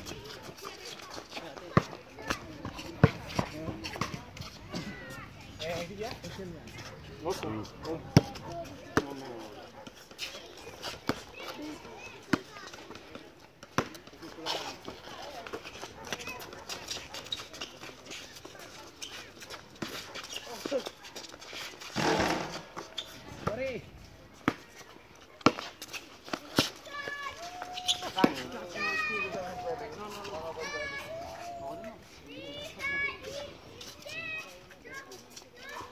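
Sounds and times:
basketball bouncing on concrete: 0.0s - 5.0s, 8.0s - 9.4s, 11.0s - 17.0s, 22.0s - 23.8s, 24.4s - 26.6s.

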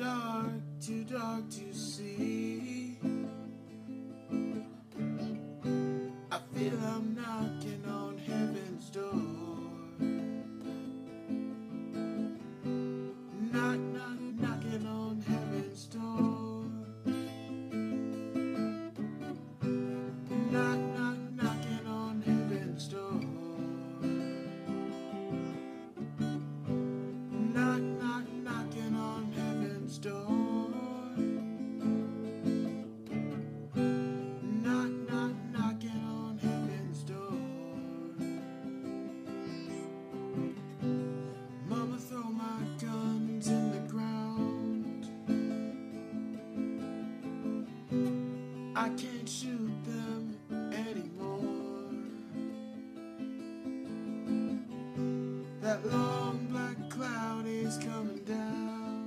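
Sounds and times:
man singing: 0.0s - 32.8s, 33.7s - 59.0s
acoustic guitar strumming: 0.0s - 59.0s.

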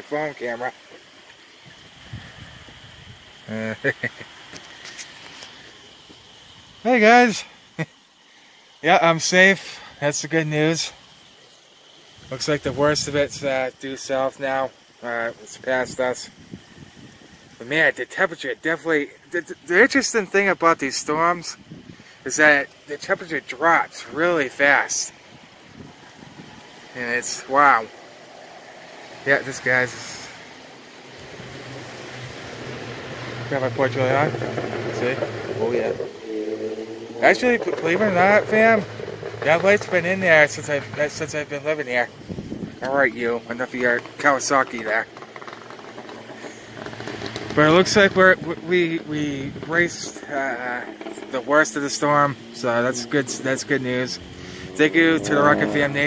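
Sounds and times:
steady rain falling: 3.3s - 56.0s.

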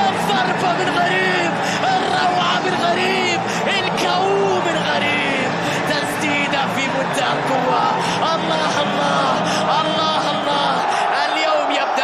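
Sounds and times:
crowd chanting and singing: 0.0s - 12.0s
crowd din: 0.0s - 12.0s.

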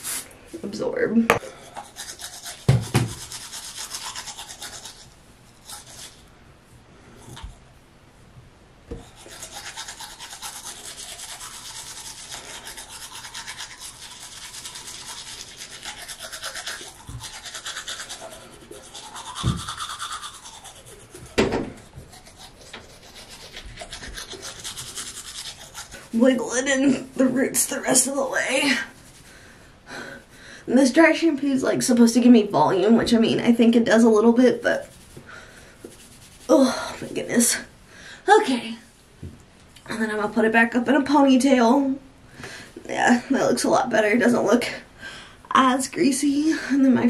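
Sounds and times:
toothbrush scrubbing teeth: 1.6s - 6.3s, 8.9s - 29.3s, 34.0s - 37.6s.

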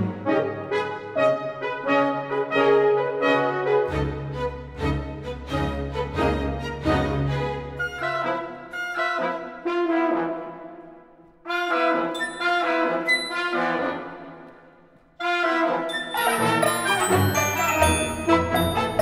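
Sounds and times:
orchestral music: 0.0s - 14.6s, 15.2s - 19.0s.

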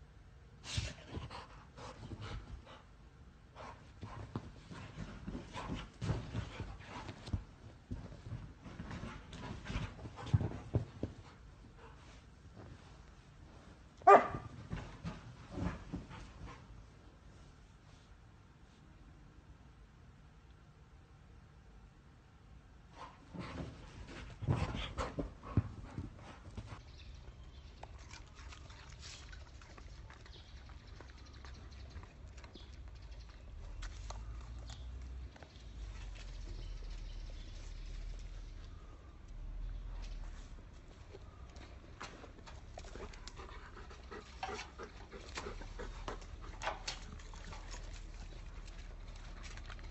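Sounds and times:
faint ticks and rustles: 3.6s - 18.9s, 22.9s - 49.9s
dog paws scrambling and thumping: 3.7s - 16.8s, 23.0s - 26.9s, 40.0s - 49.9s.

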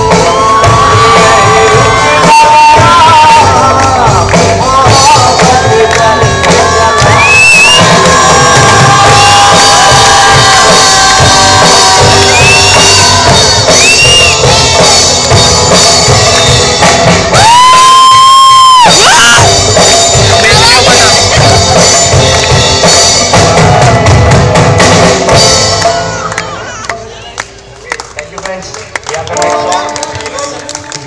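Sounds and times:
live rock band: 0.0s - 26.4s
man singing lead vocal: 0.3s - 14.3s.

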